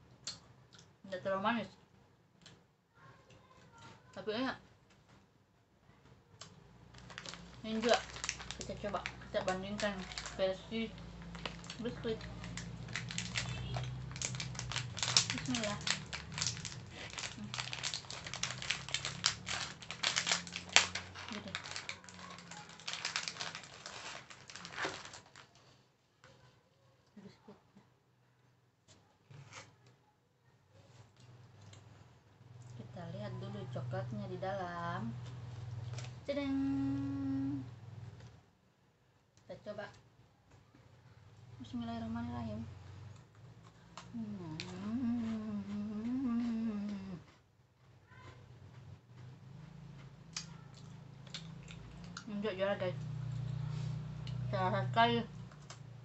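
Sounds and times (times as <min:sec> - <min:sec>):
plastic wrapper crinkling and tearing: 0:06.9 - 0:25.8
woman humming mmm: 0:36.4 - 0:37.8, 0:44.1 - 0:47.3.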